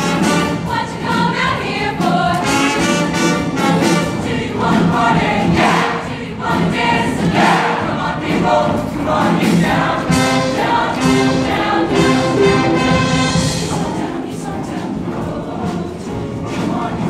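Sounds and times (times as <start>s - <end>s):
choir singing: 0.0s - 17.0s.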